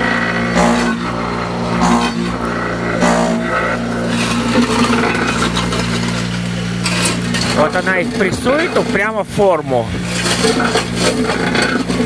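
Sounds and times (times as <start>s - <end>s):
vibrator motor humming: 0.0s - 12.0s.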